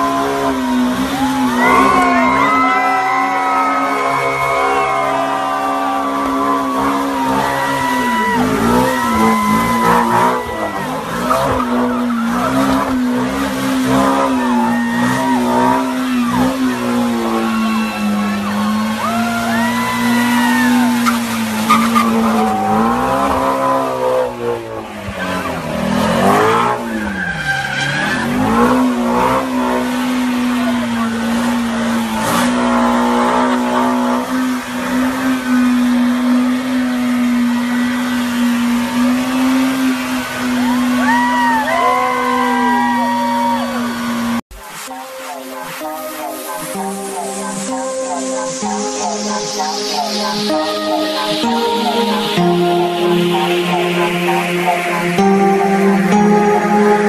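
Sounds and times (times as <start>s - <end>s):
car engine revving high: 0.0s - 57.0s
tyres squealing: 16.4s - 23.8s.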